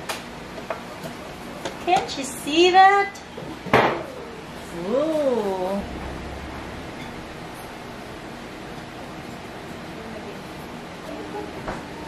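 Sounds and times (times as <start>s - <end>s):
low hum: 4.6s - 10.2s.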